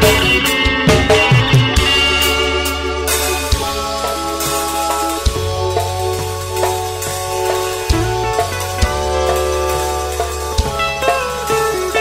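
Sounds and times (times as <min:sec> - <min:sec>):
low bass line: 0:00.0 - 0:12.0
reggae band playing: 0:00.0 - 0:12.0
sharp drum kit hits: 0:00.0 - 0:12.0.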